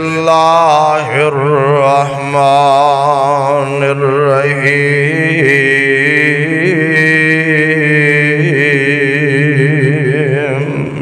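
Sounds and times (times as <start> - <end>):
man chanting recitation: 0.0 - 11.0.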